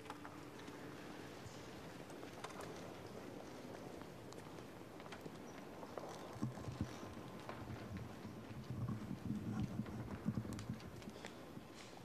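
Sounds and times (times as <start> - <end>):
footsteps on cobblestones: 0.0 - 12.0.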